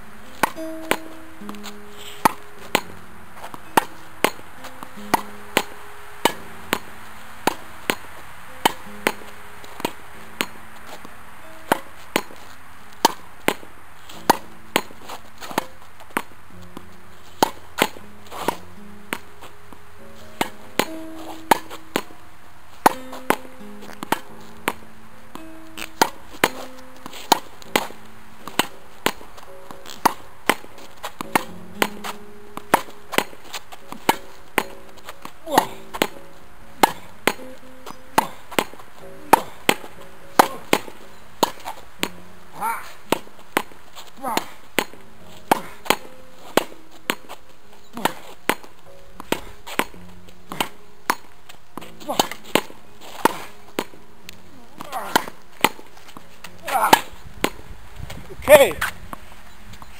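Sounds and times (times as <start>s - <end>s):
background music with sustained notes: 0.0s - 58.2s
tennis ball pocks off rackets and wall: 0.3s - 19.5s, 20.4s - 22.2s, 22.8s - 59.2s.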